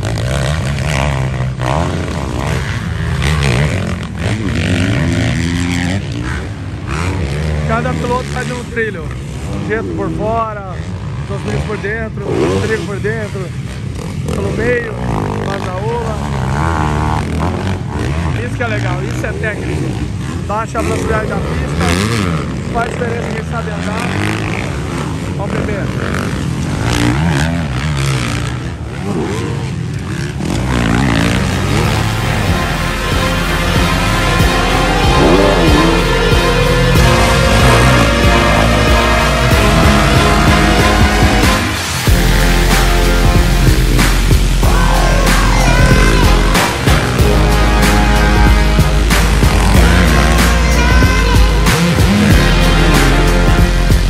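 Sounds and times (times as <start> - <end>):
low rumble of bikes: 0.0 - 54.0
motocross engines revving: 0.0 - 54.0
voices: 14.2 - 26.3, 29.0 - 54.0.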